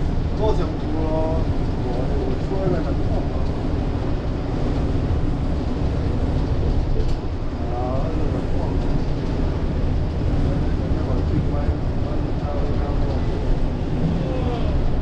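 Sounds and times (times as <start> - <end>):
bus driving inside cabin: 0.0 - 15.0
faint voices: 10.3 - 15.0.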